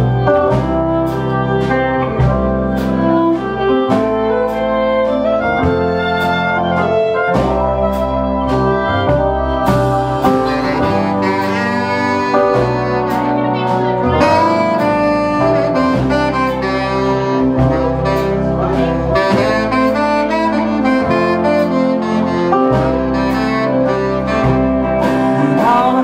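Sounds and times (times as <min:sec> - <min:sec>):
fiddle: 0:00.0 - 0:25.5
drums: 0:00.0 - 0:26.0
electric guitar: 0:00.0 - 0:26.0
saxophone lead line: 0:00.0 - 0:26.0
upright bass: 0:00.0 - 0:26.0.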